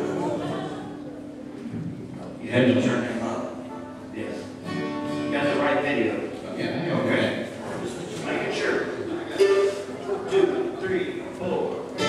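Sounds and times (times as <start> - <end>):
mandolin notes: 3.4 - 5.8, 9.1 - 10.6.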